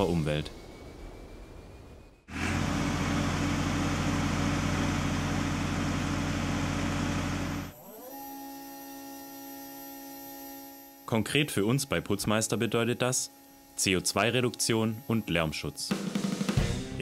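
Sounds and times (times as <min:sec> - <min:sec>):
electric motor whine: 0:02.2 - 0:15.9
diesel engine running: 0:02.3 - 0:07.8.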